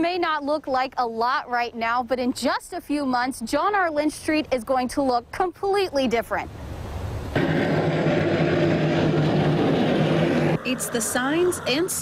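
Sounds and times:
diesel engine running: 7.4s - 12.0s.

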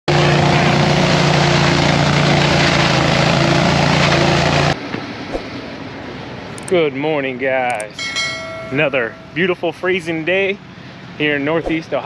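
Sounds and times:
leaf vacuum running: 0.1s - 4.8s.

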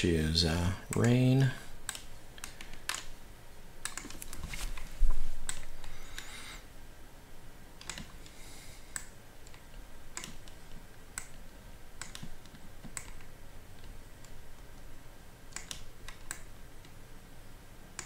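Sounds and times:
computer mouse clicks: 0.9s - 1.2s, 1.8s - 3.2s, 3.8s - 4.8s, 5.4s - 6.3s, 7.8s - 14.9s, 15.5s - 17.0s.

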